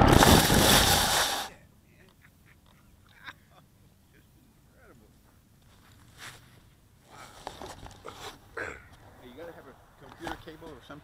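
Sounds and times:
foam glider handling rustles and knocks: 7.4s - 8.4s.

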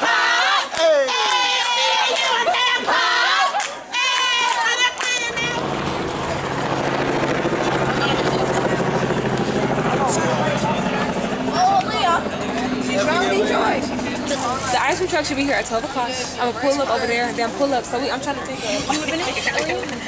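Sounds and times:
voices and chatter: 0.0s - 20.0s
engine humming: 3.8s - 20.0s.

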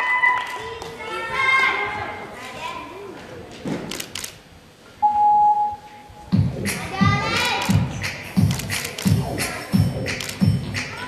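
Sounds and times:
electronic beep: 5.0s - 6.1s.

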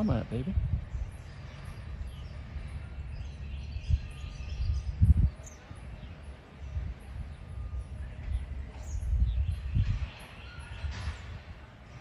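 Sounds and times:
steady low rumble: 0.0s - 10.1s
faint bird chirps: 0.8s - 12.0s.

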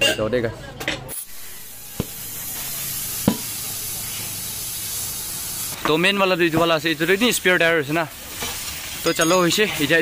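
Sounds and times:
air hissing: 1.1s - 5.8s.

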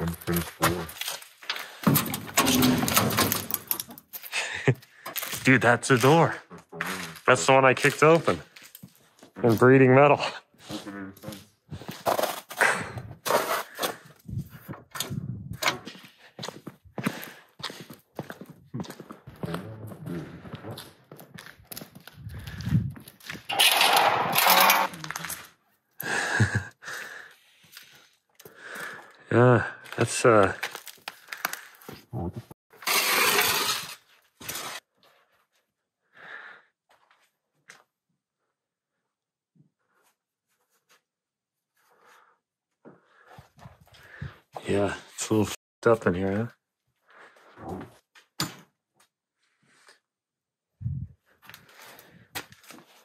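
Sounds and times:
debris cracking and crunching: 0.0s - 9.8s, 20.4s - 25.6s, 29.8s - 32.0s
indistinct voices: 19.4s - 20.9s, 23.5s - 25.4s.

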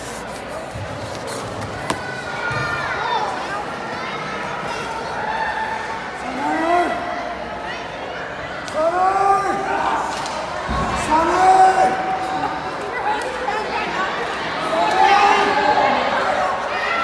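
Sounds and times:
crowd hubbub: 0.0s - 17.0s.

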